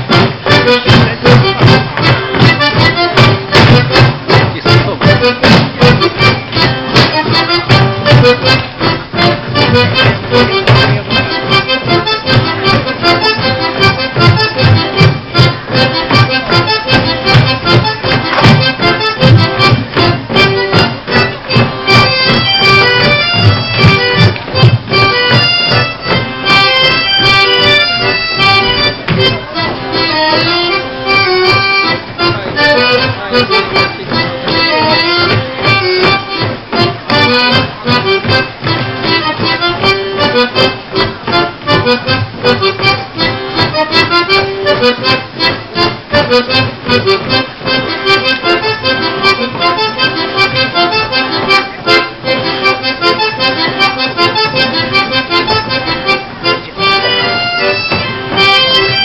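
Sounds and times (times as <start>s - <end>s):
accordion folk dance music: 0.0s - 59.0s.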